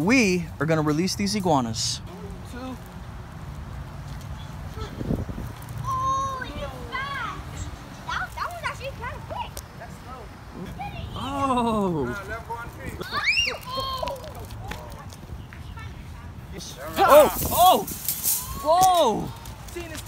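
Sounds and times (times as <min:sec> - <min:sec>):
group shouting excitedly: 0:13.0 - 0:14.2, 0:16.8 - 0:19.4
high whoop: 0:17.0 - 0:19.4.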